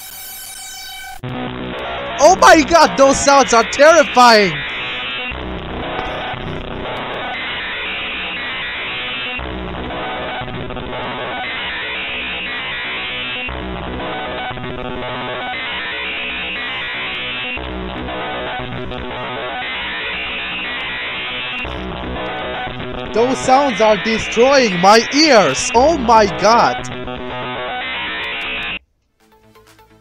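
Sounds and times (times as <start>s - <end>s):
harsh synthesized bytebeat noise: 23.2s - 26.9s.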